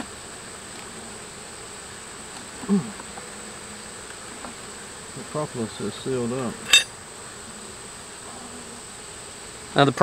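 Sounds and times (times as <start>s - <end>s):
honey bees humming: 0.0s - 10.0s.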